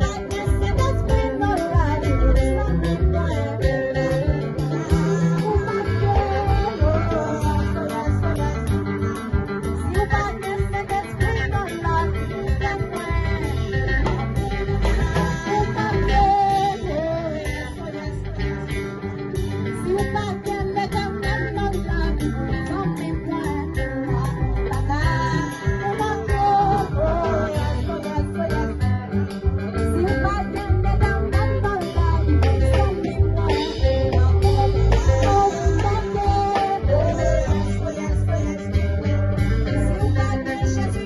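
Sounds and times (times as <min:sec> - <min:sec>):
bass and band backing: 0:00.0 - 0:41.0
electric guitar melody: 0:00.0 - 0:41.0.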